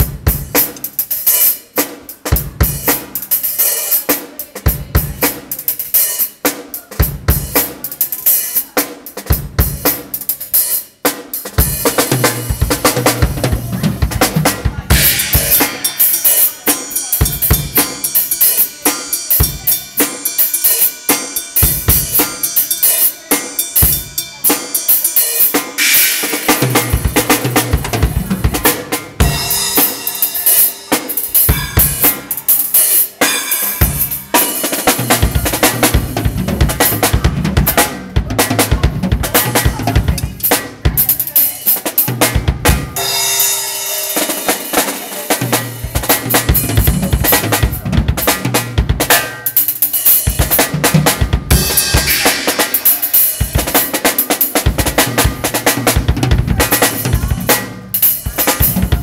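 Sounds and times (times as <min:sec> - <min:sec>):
drum kit playing: 0:00.0 - 0:59.0
ringing cymbal: 0:14.9 - 0:26.5.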